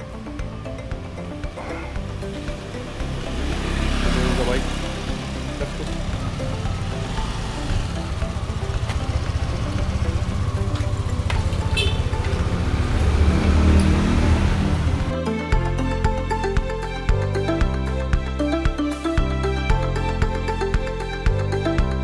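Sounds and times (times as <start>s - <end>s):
background music: 0.0s - 22.0s
scooter engine running: 0.2s - 15.1s.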